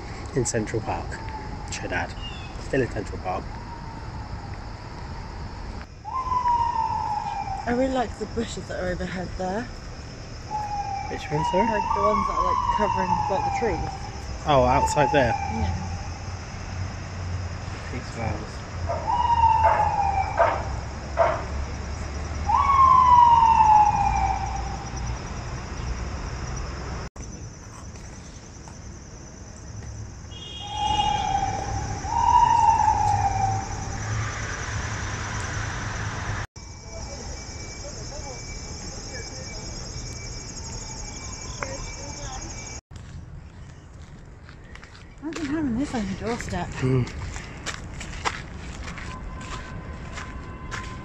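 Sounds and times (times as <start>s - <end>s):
emergency vehicle siren: 0.4s - 8.2s, 10.5s - 16.9s, 17.9s - 27.0s, 30.3s - 42.8s, 48.8s - 51.0s.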